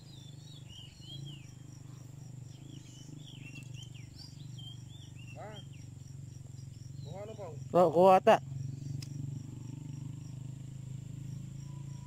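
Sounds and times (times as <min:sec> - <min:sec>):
birds chirping: 0:00.0 - 0:12.0
faint high insect buzz: 0:00.0 - 0:12.0
steady low hum: 0:00.0 - 0:12.0.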